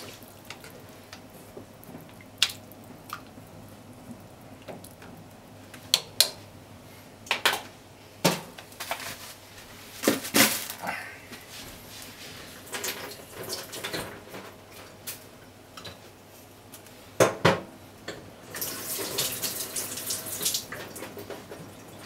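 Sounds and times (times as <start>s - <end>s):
water bubbling in a pot: 0.0s - 6.2s.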